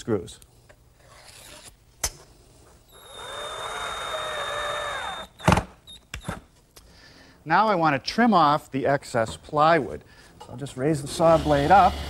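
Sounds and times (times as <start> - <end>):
power drill whine: 2.9 - 5.6, 11.1 - 12.0.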